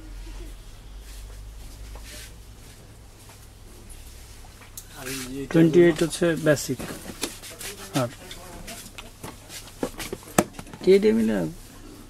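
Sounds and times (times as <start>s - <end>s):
cardboard boxes knocking and rubbing: 6.6s - 7.4s, 9.8s - 11.0s.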